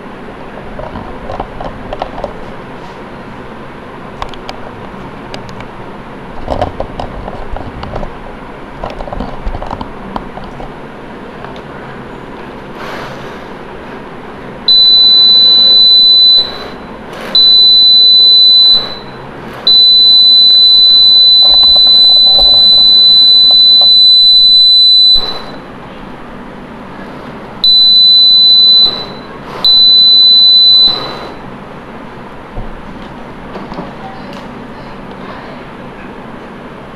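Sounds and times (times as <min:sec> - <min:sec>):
high-pitched buzzer tone: 0:14.7 - 0:25.7, 0:27.6 - 0:31.4.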